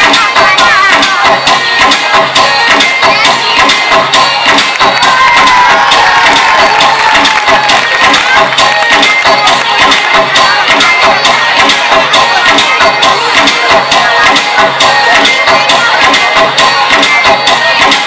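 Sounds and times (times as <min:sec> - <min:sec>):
loud music with steady beat: 0:00.0 - 0:18.0
audience cheering: 0:04.8 - 0:09.3.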